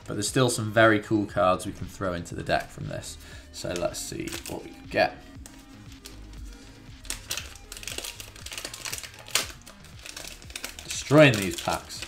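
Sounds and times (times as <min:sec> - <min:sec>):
quiet background music: 0:00.0 - 0:12.0
foil pack crinkling and tearing: 0:03.6 - 0:04.8, 0:05.4 - 0:12.0.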